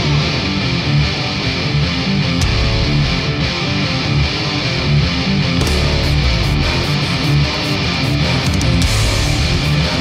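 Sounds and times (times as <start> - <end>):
rock music with guitar: 0.0 - 10.0.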